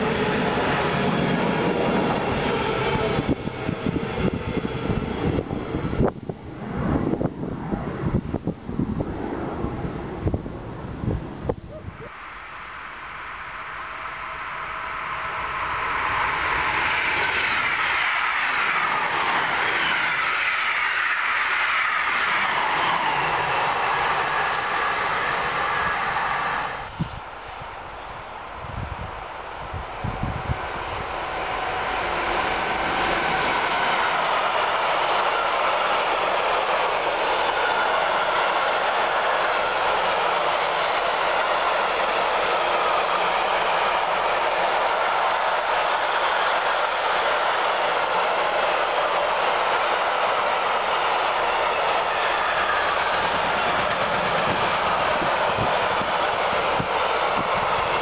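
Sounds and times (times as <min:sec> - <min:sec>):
train wheels rushing on rail: 0:00.0 - 0:58.0
train whine falling in pitch: 0:11.8 - 0:58.0.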